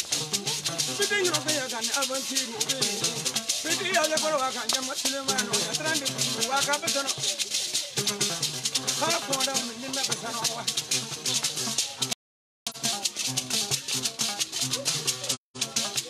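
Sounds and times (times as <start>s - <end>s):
men singing: 0.0s - 11.0s
lute playing: 0.0s - 12.1s, 12.7s - 16.0s
shaker rattle: 0.0s - 16.0s.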